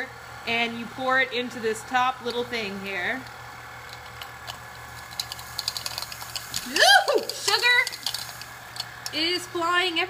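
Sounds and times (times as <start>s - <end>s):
spinner motor whirring: 0.6s - 9.7s.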